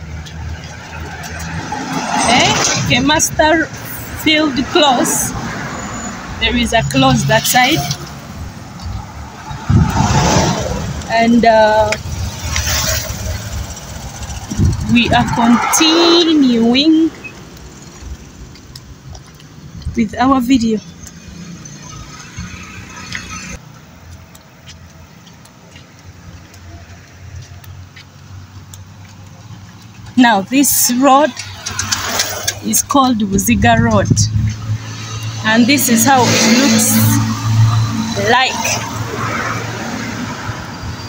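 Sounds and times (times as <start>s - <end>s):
road vehicle rumble: 0.0s - 41.0s
car passing close by: 0.1s - 11.2s, 11.9s - 18.5s, 30.9s - 32.9s, 33.8s - 41.0s.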